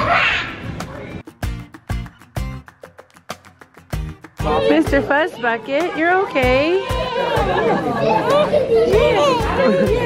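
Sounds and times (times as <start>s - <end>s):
voices chattering: 4.4s - 10.0s.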